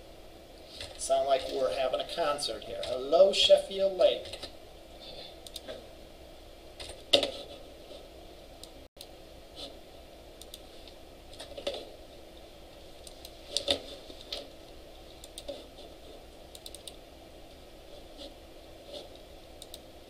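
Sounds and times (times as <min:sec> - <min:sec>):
faint steady hum: 0:00.0 - 0:20.0
mouse clicks: 0:16.5 - 0:17.0.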